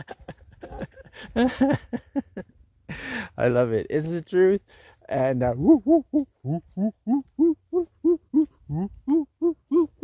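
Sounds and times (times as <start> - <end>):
man hooting short hoo sounds: 5.3 - 10.0.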